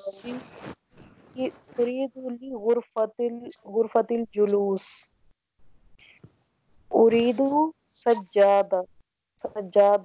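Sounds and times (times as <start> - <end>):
person speaking: 0.0 - 5.0, 6.9 - 8.8, 9.5 - 10.0
soft whispered hiss: 0.0 - 5.1, 6.0 - 8.8.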